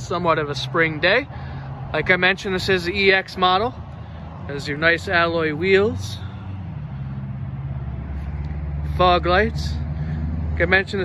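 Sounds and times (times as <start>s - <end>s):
vehicle engine idling: 0.0s - 11.0s.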